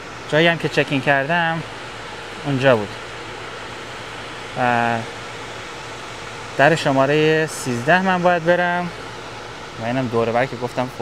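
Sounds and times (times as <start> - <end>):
rushing air from ventilation fans: 0.0 - 11.0.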